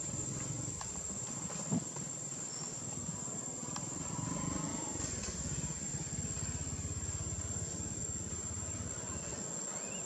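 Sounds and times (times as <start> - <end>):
engine running with low throb: 3.6 - 9.5.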